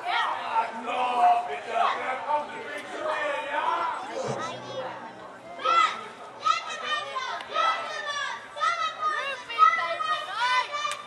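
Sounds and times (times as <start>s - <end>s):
children calling out: 4.0s - 11.0s.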